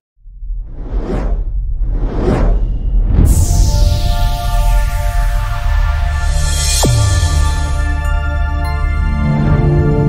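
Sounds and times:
steady deep rumble: 0.2s - 9.0s.

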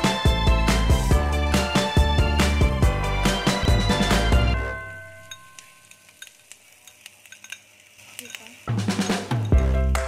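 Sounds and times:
background music: 0.0s - 5.9s, 8.5s - 10.0s
cup and utensil clinking on wok: 5.2s - 9.8s.

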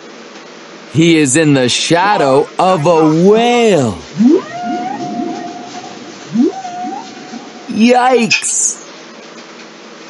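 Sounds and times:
whale call: 2.8s - 7.9s.

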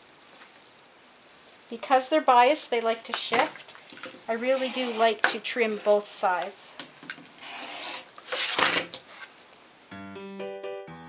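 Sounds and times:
rotary cutter slicing fabric: 4.4s - 6.0s, 7.4s - 8.9s
background music: 9.9s - 11.0s.

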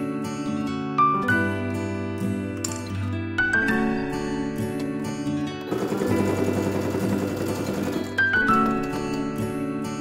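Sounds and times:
soft background music: 0.0s - 10.0s
sewing machine stitching: 5.6s - 8.3s.

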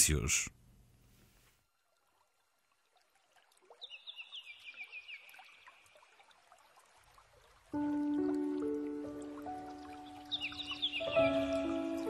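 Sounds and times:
trickling water: 1.5s - 12.0s
soft music with sustained notes: 7.7s - 12.0s.

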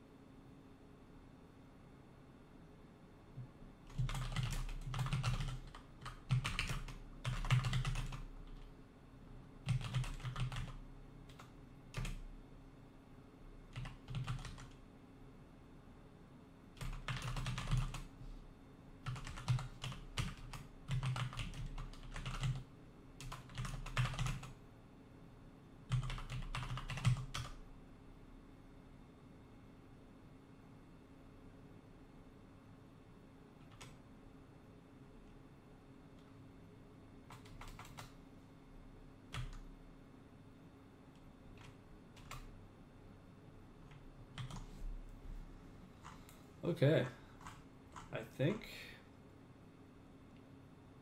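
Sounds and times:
typing on computer keyboard: 3.4s - 8.7s, 9.6s - 12.3s, 13.7s - 14.8s, 16.8s - 18.1s, 19.0s - 24.6s, 25.9s - 27.6s, 33.6s - 34.0s, 37.3s - 38.2s, 39.3s - 39.6s, 41.5s - 42.5s, 43.8s - 44.7s, 46.0s - 46.4s, 47.4s - 48.1s.

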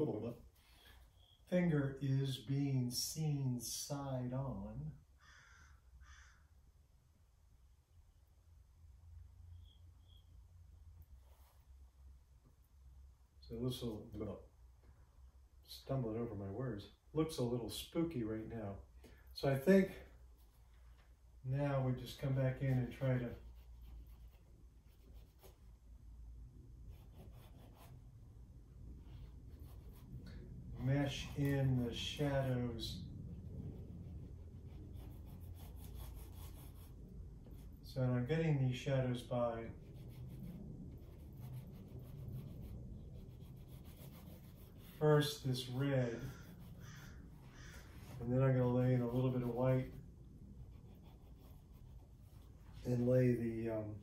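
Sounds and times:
low room hum: 0.0s - 54.0s
crow cawing: 5.2s - 6.6s, 46.2s - 48.0s
paint stick rubbing on paper: 33.7s - 37.8s, 39.7s - 53.1s.

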